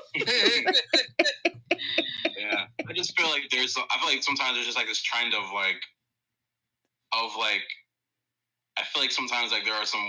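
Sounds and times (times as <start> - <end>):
woman laughing hard: 0.0 - 3.0.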